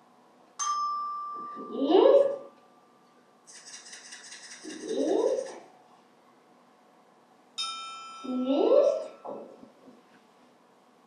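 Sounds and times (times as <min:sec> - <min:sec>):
shaker rattling: 0:03.5 - 0:05.7
struck metal instrument ringing: 0:07.6 - 0:09.4.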